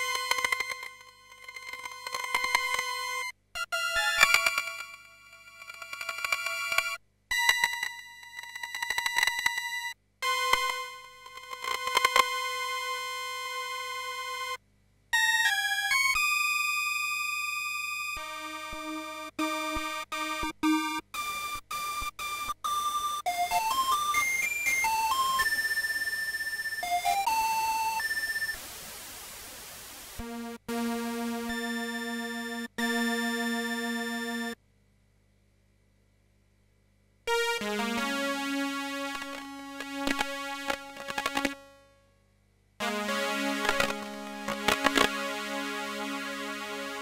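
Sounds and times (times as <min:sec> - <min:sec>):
synthesizer noise hiss: 0:24.9 - 0:32.9, 0:37.3 - 0:41.7, 0:42.8 - 0:47.0
synthesizer sustained tone: 0:37.3 - 0:41.8
sharp crackling clicks: 0:39.1 - 0:41.6, 0:43.6 - 0:45.2.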